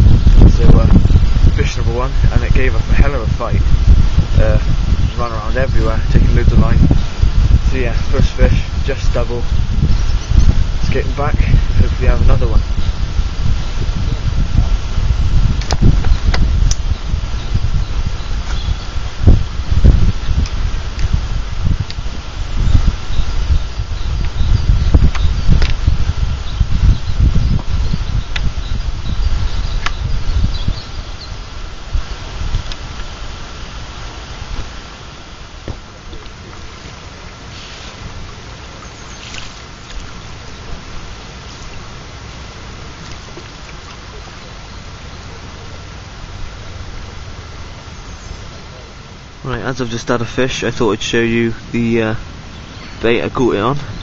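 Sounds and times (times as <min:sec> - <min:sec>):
steady outdoor hiss: 0:00.0 - 0:54.0
wind buffeting microphone: 0:00.0 - 0:54.0
microphone handling knocks: 0:15.5 - 0:16.9, 0:35.6 - 0:36.3.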